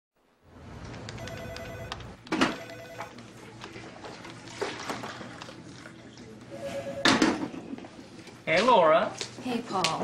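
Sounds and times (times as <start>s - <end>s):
telephone ringing: 1.2s - 3.2s, 6.6s - 7.2s.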